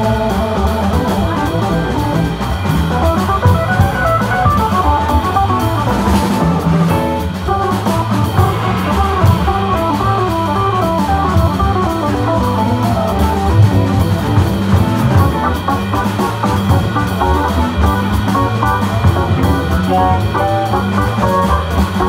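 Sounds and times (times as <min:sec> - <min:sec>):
jazz organ trio playing swing: 0:00.0 - 0:22.0.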